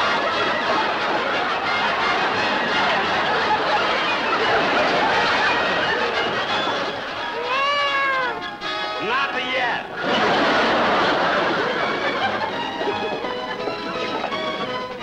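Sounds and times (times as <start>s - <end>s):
music with held notes: 0.0s - 9.2s, 9.8s - 15.0s
busy din: 0.0s - 15.0s
cat meowing: 7.3s - 8.5s.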